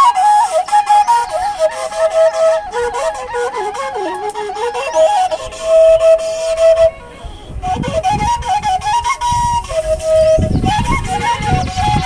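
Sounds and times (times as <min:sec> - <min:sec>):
end-blown flute melody: 0:00.0 - 0:12.0.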